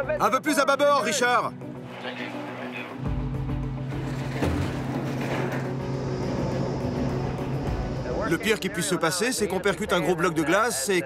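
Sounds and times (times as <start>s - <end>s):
background music score: 0.0s - 11.0s
boat engine droning: 1.6s - 10.9s.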